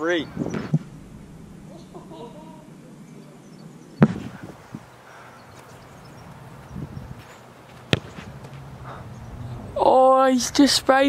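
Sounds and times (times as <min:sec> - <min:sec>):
football landing thud: 0:04.0 - 0:04.5, 0:07.9 - 0:08.3.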